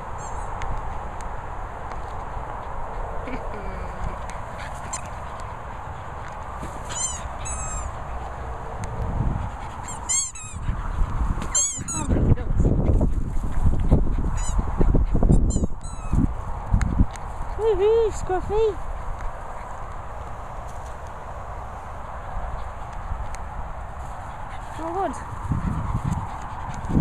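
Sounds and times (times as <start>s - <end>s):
squeaky dog toys squeaking: 6.8s - 8.0s, 9.8s - 10.6s, 11.5s - 12.1s, 14.4s - 14.6s, 15.4s - 16.2s.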